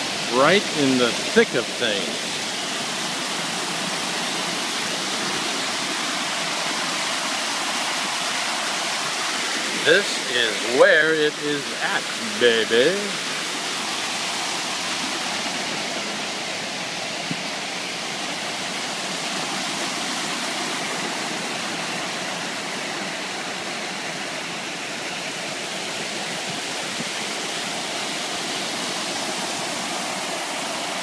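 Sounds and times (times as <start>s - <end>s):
fountain water splashing: 0.0s - 31.0s.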